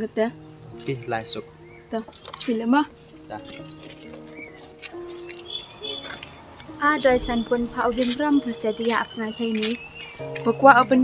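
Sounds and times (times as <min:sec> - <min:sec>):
faint outdoor ambience: 0:00.0 - 0:11.0
high chirps: 0:00.2 - 0:11.0
held background music note: 0:02.6 - 0:11.0
woman speaking: 0:06.8 - 0:09.8, 0:10.4 - 0:11.0.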